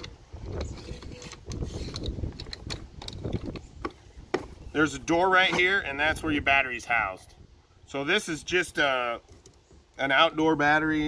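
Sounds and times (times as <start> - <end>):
plastic clicks and knocks: 0.0 - 4.6.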